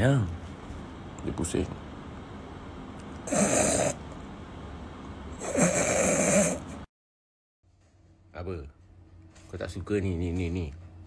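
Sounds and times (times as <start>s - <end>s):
man fake snoring: 3.2s - 4.0s, 5.3s - 6.9s.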